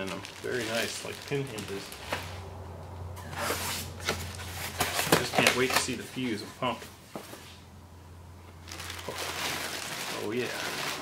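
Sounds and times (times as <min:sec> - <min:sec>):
plastic bag crinkling: 0:00.0 - 0:02.4, 0:08.6 - 0:11.0
steady low hum: 0:01.4 - 0:08.7.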